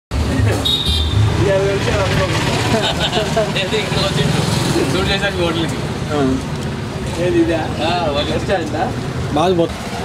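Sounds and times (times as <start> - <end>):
low traffic rumble: 0.1 - 10.0.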